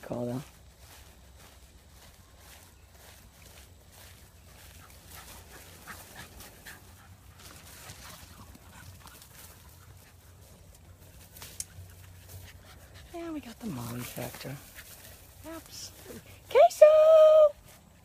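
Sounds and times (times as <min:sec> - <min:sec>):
puppy panting and moving: 0:04.5 - 0:16.5.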